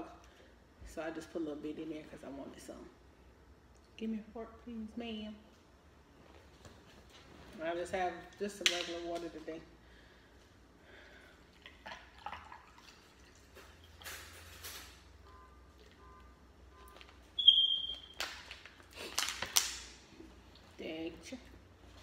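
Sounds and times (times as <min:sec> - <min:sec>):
brief high squeak: 0:17.4 - 0:18.0.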